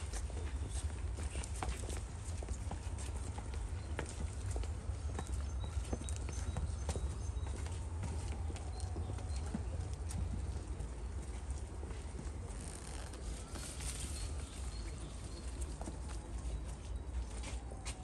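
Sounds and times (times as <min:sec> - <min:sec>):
footsteps on paved path: 0:00.0 - 0:18.0.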